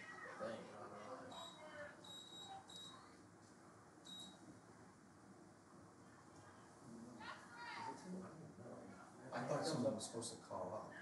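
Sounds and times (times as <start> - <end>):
faint high-pitched beeps: 1.3 - 3.1, 4.0 - 4.4.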